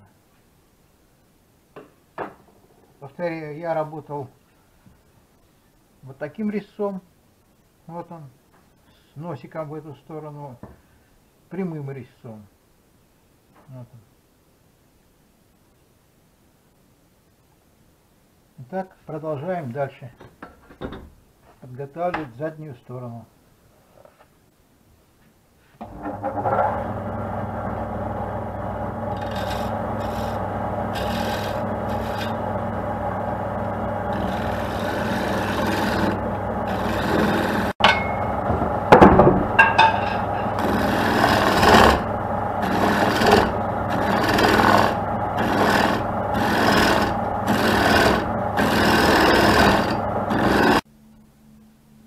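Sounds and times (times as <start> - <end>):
wood lathe humming: 25.8 - 50.8
sandpaper sanding spinning wood: 28.3 - 37.8, 40.2 - 50.8.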